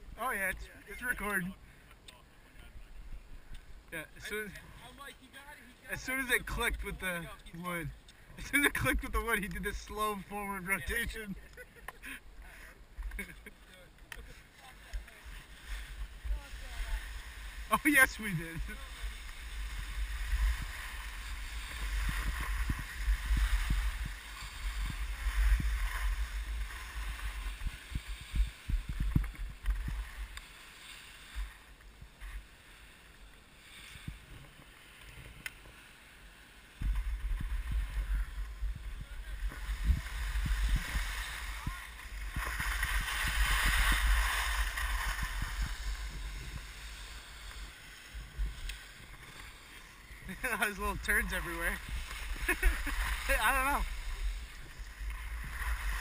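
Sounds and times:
skis scraping over packed snow: 0:00.0 - 0:01.6, 0:03.9 - 0:56.0
wind buffeting microphone: 0:19.8 - 0:30.1, 0:36.8 - 0:47.0.

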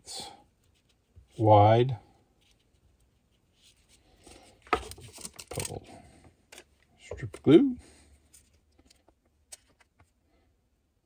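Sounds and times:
paper rustling and crackling: 0:02.5 - 0:05.8.

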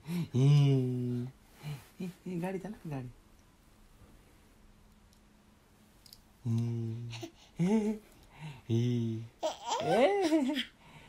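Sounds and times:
person humming a low note: 0:00.1 - 0:01.3, 0:06.4 - 0:08.0, 0:08.7 - 0:09.3.

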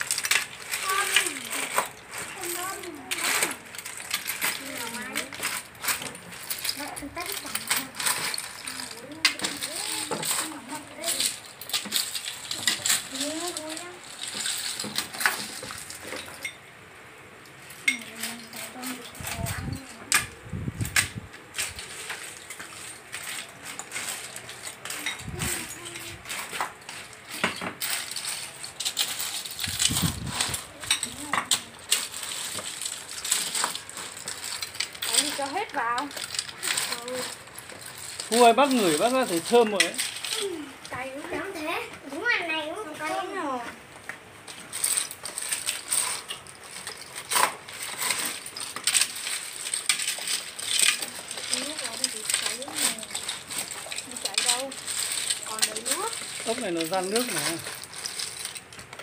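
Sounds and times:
shells clattering in metal pot: 0:00.0 - 0:16.7, 0:17.3 - 0:42.4, 0:44.2 - 0:59.0.

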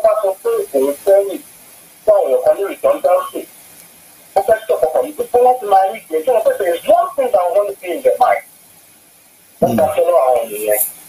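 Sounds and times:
person talking: 0:09.6 - 0:10.9.

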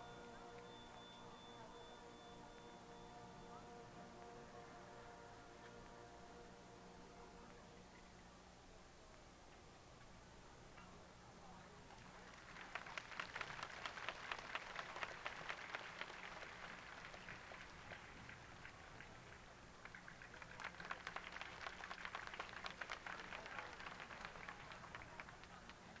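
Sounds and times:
faint hand clapping: 0:12.4 - 0:26.0.

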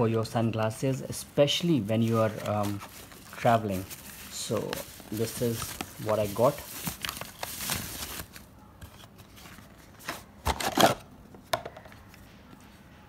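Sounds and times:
paper and cardboard rustling: 0:00.4 - 0:11.0.

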